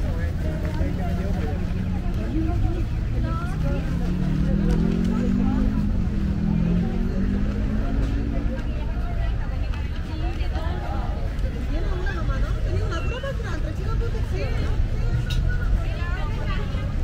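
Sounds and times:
low motor vehicle drone: 0.0s - 9.0s
voices of passers-by: 0.0s - 17.0s.

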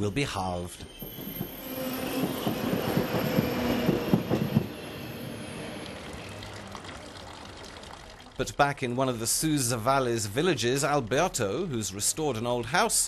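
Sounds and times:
train running on rails: 0.7s - 8.2s
clattering knocks of wheels: 0.8s - 5.2s.

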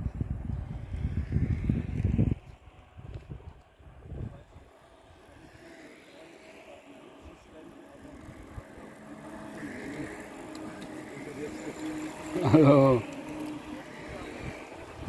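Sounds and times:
bicycle tyres humming on asphalt: 0.0s - 15.0s
riders chatting faintly: 0.0s - 15.0s.

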